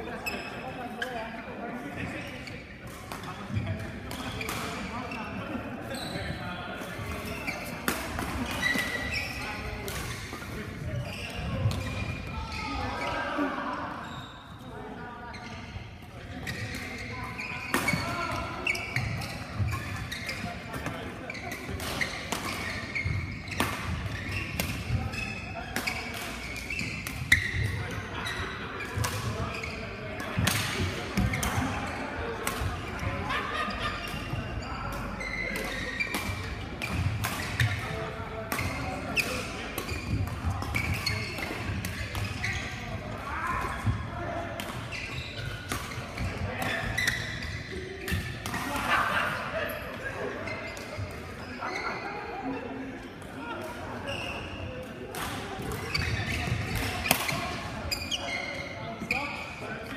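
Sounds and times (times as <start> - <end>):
people talking: 0.0 - 59.9.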